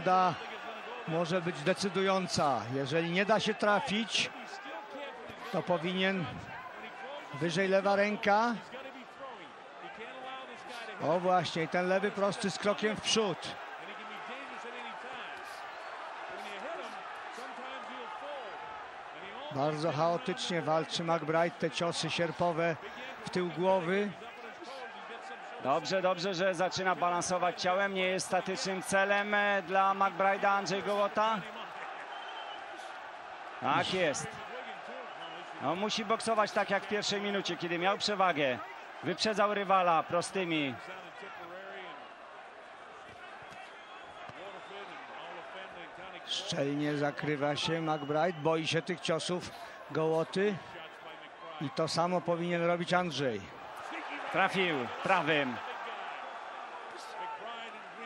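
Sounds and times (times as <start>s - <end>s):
arena crowd noise: 0.0s - 58.0s.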